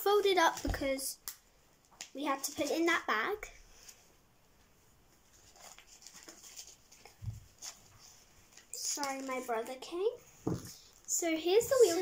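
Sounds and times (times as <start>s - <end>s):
small clicks and rustles: 5.1s - 9.9s.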